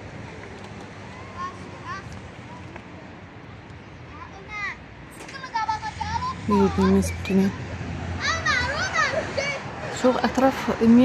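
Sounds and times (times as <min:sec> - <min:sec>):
street ambience: 0:00.0 - 0:11.0
children calling out: 0:04.4 - 0:10.1.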